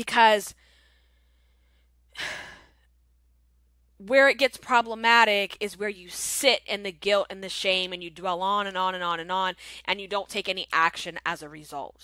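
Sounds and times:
woman breathing in: 0.6s - 2.9s.

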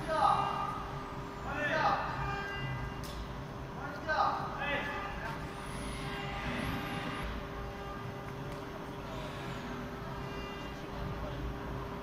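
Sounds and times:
steady machine hum: 0.0s - 12.0s.

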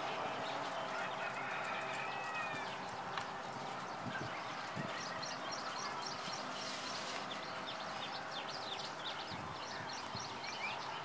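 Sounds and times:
drawn-out bird call: 0.0s - 11.0s
bird chirps: 2.2s - 11.0s.

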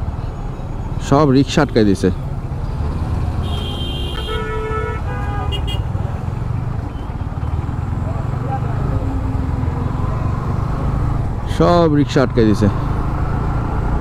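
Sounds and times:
motorcycle engine rumble: 0.0s - 14.0s
road traffic: 0.0s - 14.0s
vehicle horns honking: 3.4s - 6.1s.

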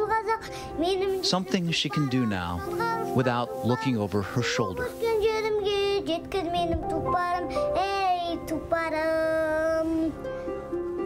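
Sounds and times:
girl singing solo: 0.0s - 10.3s.

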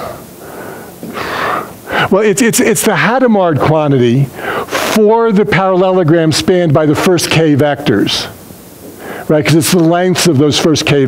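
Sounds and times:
man breathing out: 0.0s - 2.1s.

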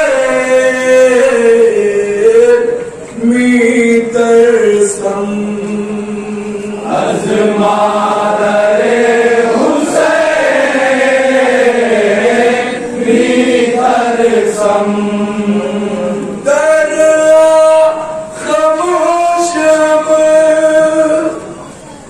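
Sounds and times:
men chanting in unison: 3.8s - 21.2s
lead voice reciting: 12.8s - 21.5s.

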